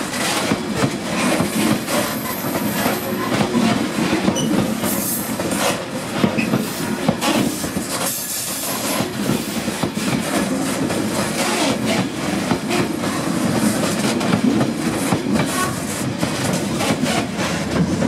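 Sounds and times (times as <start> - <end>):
train wheels clattering over rails: 0.0 - 18.0.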